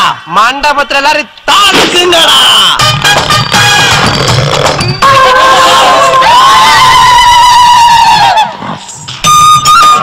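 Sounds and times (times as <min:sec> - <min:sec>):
background music high note: 0:02.4 - 0:08.0
group of people crying out: 0:05.1 - 0:08.6.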